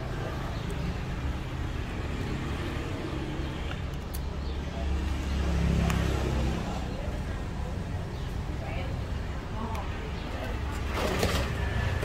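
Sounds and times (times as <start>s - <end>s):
road traffic rumble: 0.0s - 12.0s
vehicle passing: 4.6s - 8.0s.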